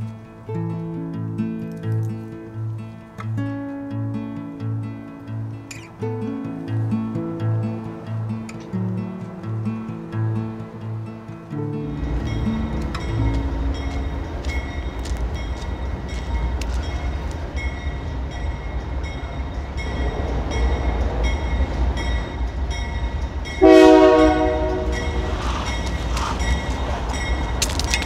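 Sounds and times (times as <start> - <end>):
locomotive low rumble: 4.1 - 28.0
train horn blast: 23.6 - 26.4.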